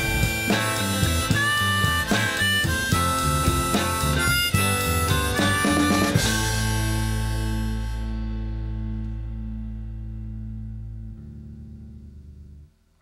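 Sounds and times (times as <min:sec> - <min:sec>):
final chord ringing: 0:00.0 - 0:01.8
live rock band playing: 0:00.0 - 0:08.9
high bending guitar notes: 0:00.0 - 0:12.4.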